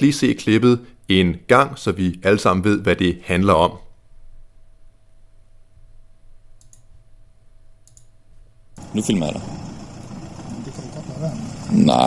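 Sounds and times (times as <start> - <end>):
low steady hum: 0.0 - 12.0
faint short clicks: 6.6 - 6.9, 7.8 - 8.1.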